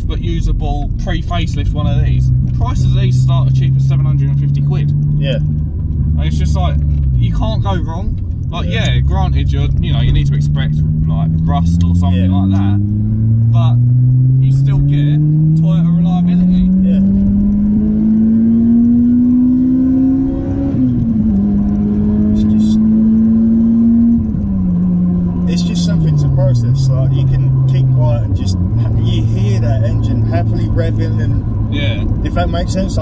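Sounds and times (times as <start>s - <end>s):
car engine revving: 0.0s - 33.0s.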